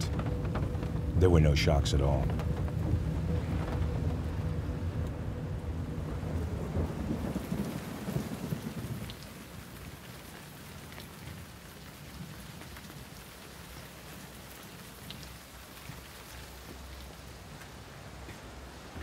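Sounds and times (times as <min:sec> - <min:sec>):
thunder rumble: 0:00.0 - 0:10.2
steady rain: 0:00.0 - 0:19.0.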